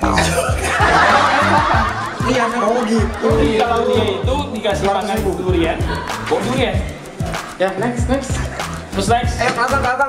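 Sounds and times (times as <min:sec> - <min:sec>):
people laughing: 0:00.0 - 0:09.5
background music: 0:00.0 - 0:10.0.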